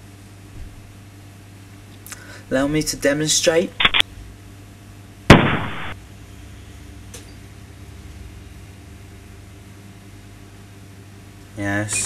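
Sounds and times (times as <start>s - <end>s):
shotgun blast: 5.3s - 6.0s.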